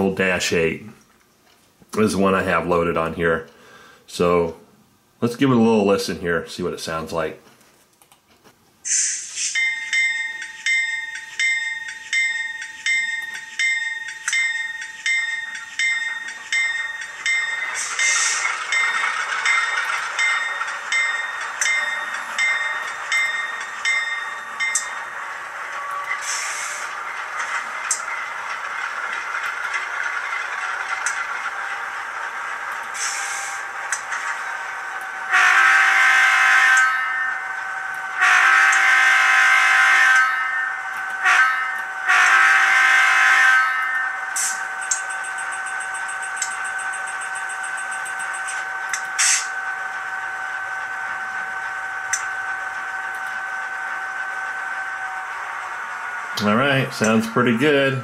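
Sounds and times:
train horn: 35.2 - 37.1, 38.2 - 44.1.

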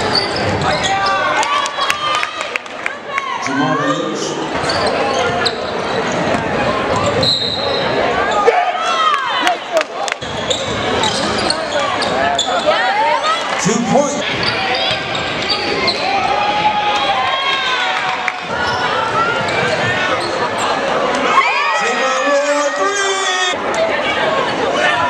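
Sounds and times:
sneaker squeaks: 0.0 - 2.0, 3.8 - 8.5, 10.2 - 13.4, 14.2 - 16.2, 18.4 - 20.9
voices of players and crowd: 0.0 - 25.0.

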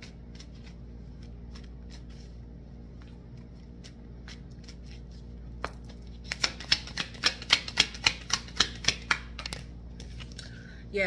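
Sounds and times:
cards being shuffled: 0.0 - 10.4.

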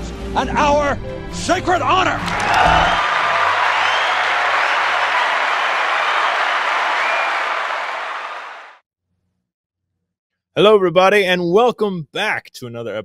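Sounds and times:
crowd applauding: 2.2 - 8.8.

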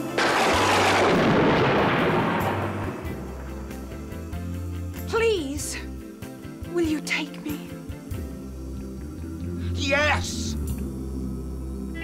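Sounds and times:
background music: 0.0 - 12.0
loud explosion blast: 0.2 - 3.4.

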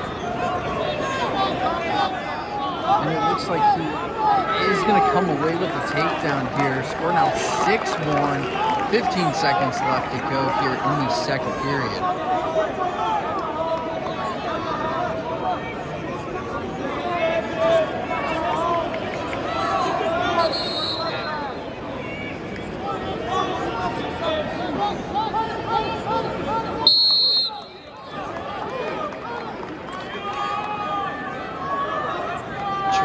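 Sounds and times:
crowd and coaches shouting: 0.0 - 33.0.

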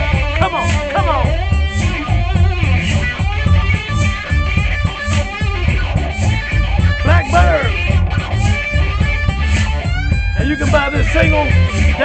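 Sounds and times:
bass and drum groove: 0.0 - 12.0
electric guitar lead: 0.0 - 12.0.

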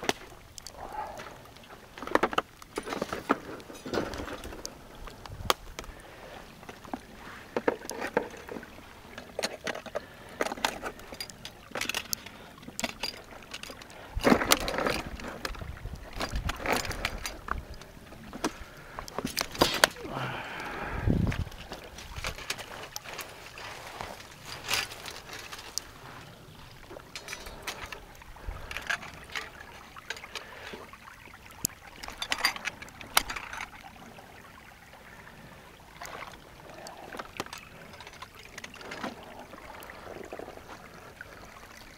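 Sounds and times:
splashing in shallow water and mud: 0.0 - 41.9.

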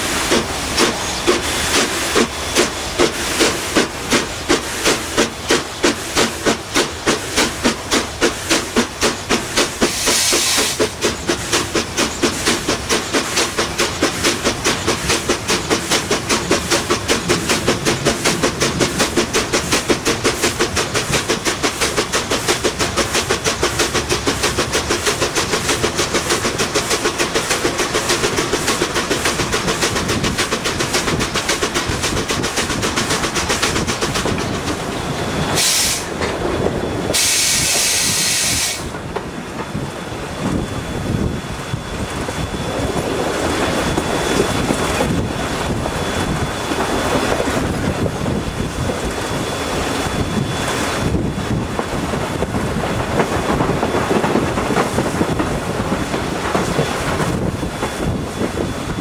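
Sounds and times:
loud bursts of steam hiss: 0.0 - 36.2, 37.0 - 39.1
steam hissing: 0.0 - 59.0
steam locomotive chuffing: 0.0 - 59.0.

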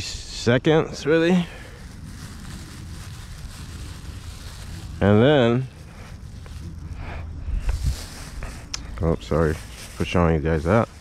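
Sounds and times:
wind rumble on microphone: 0.0 - 10.2.

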